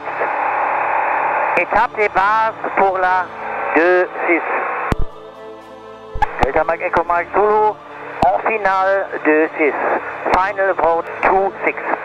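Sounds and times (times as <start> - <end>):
radio voice transmission: 0.0 - 5.1, 6.2 - 12.0
radio hiss: 0.0 - 5.2, 6.2 - 12.0
steady hum: 0.0 - 12.0.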